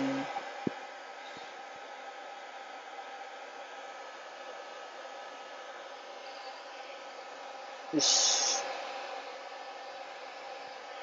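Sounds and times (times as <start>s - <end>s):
blow dryer blowing air: 0.0s - 11.0s
faint steady hum: 0.0s - 11.0s.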